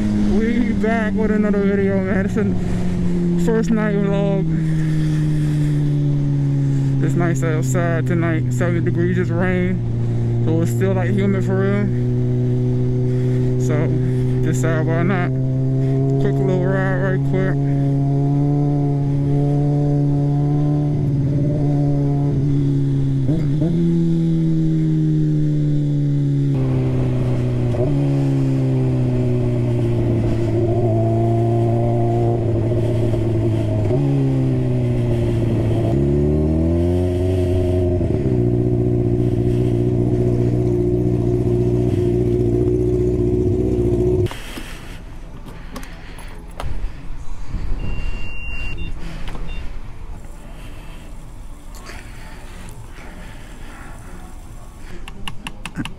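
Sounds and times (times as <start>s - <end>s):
motorcycle engine revving: 0.0s - 44.8s, 48.7s - 55.1s
short beep: 47.8s - 49.7s.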